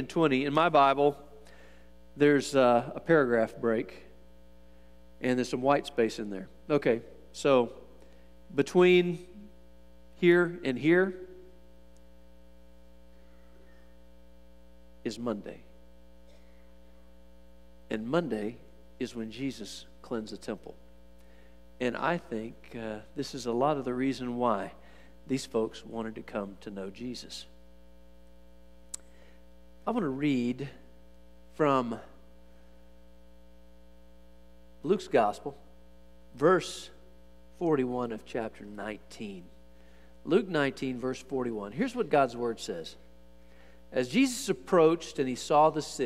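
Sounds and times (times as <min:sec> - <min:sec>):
electrical mains hum: 0:00.0 - 0:46.0
man's voice: 0:40.3 - 0:43.0, 0:44.0 - 0:46.0.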